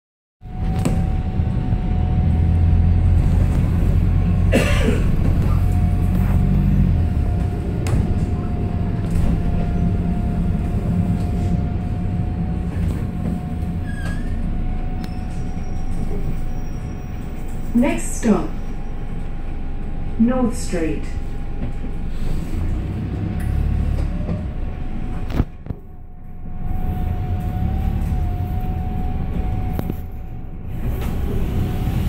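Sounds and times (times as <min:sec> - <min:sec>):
high drivetrain whine: 0:00.4 - 0:20.2, 0:21.1 - 0:32.0
bus body rattles and squeaks: 0:00.4 - 0:32.0
bus engine rumble: 0:00.4 - 0:32.0.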